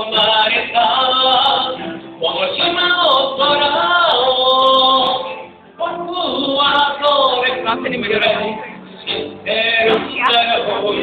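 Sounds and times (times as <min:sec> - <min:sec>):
backing music: 0:00.0 - 0:11.0
man singing: 0:00.0 - 0:11.0.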